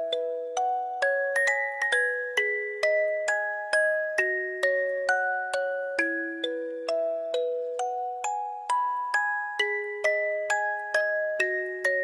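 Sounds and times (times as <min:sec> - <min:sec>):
music box melody: 0:00.0 - 0:12.0.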